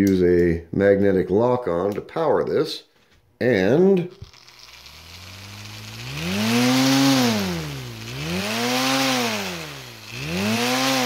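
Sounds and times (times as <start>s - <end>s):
electric motor hum: 4.2s - 11.0s
propeller blades whooshing: 4.6s - 11.0s.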